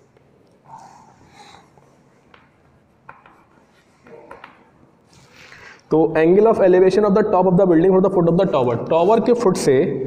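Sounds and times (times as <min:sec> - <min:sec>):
chalk tapping board: 0:01.8 - 0:04.8.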